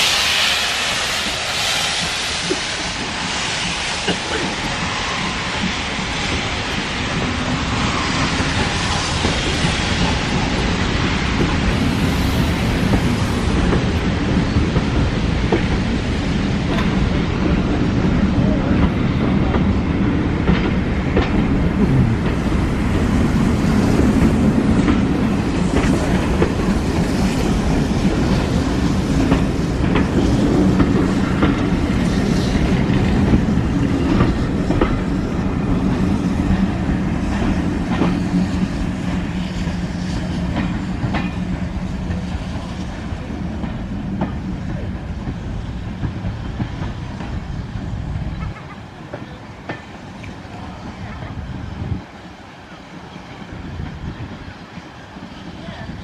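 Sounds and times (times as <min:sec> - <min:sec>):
train coaches rumbling past: 0:00.0 - 0:56.0.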